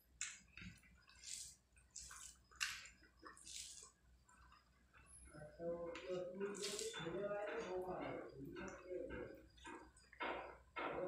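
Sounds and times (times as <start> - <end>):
wet squishing of rice mixed by hand: 0.0 - 5.2, 6.0 - 7.8.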